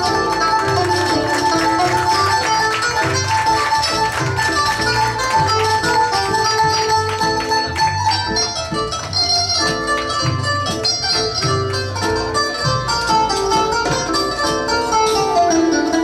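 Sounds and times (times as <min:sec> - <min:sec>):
hand drum rhythm: 0:00.0 - 0:16.0
plucked zither melody: 0:00.0 - 0:16.0.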